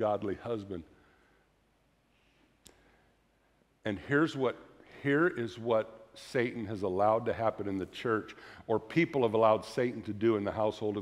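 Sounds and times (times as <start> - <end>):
man speaking: 0.0 - 0.9, 3.8 - 11.0.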